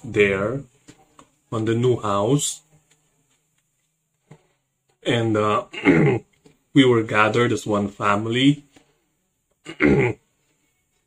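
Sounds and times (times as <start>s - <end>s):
man clearing throat: 5.7s - 6.3s, 9.6s - 10.2s.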